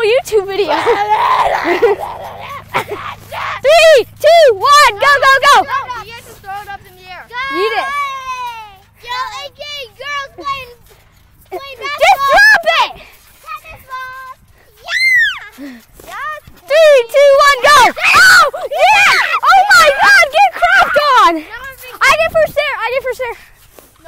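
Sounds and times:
children shouting and yelling: 0.0 - 24.0.

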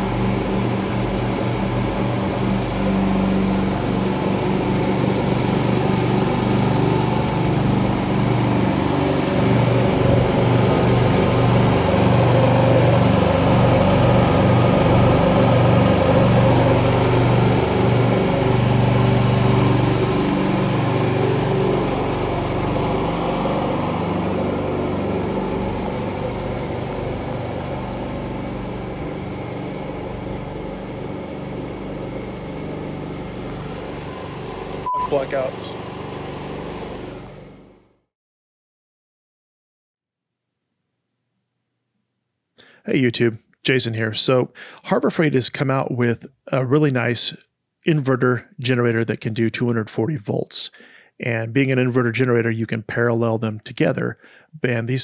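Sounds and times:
generator engine running: 0.0 - 37.9.

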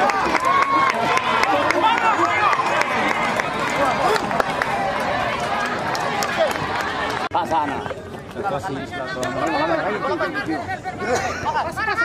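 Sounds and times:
crowd shouting: 0.0 - 7.3.

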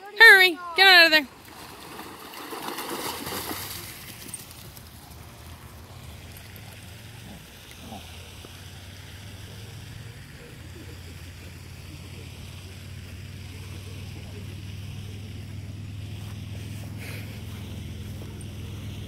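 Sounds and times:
dogs splashing through water: 1.3 - 19.0.

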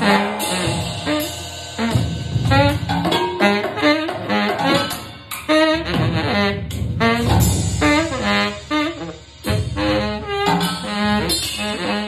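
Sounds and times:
tenor saxophone improvising: 0.0 - 12.0.

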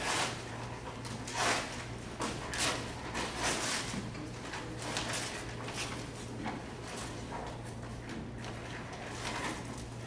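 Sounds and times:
low equipment hum: 0.0 - 10.0.

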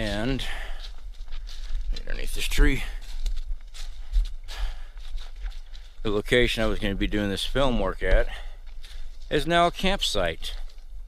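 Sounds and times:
brush and leaves rustling: 0.0 - 11.0
footsteps on woodland trail: 0.0 - 11.0.

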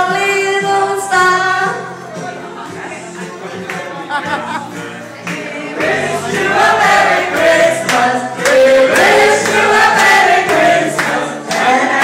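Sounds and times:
music: 0.0 - 12.0
many voices singing together: 4.1 - 12.0.

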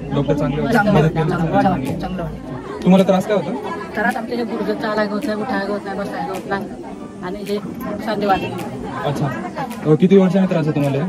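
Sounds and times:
background voices chattering: 0.0 - 11.0
woman talking: 3.8 - 9.0.

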